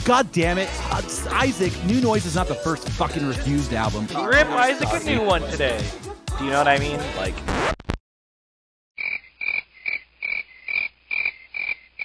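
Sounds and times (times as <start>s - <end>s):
rhythmic croaking call: 9.0s - 12.0s.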